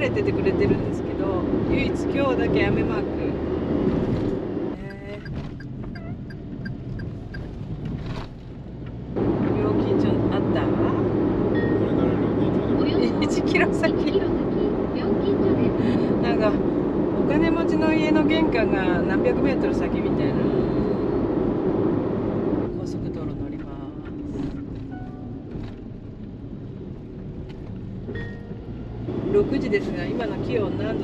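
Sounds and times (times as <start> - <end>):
road and engine noise in van: 0.0 - 31.0.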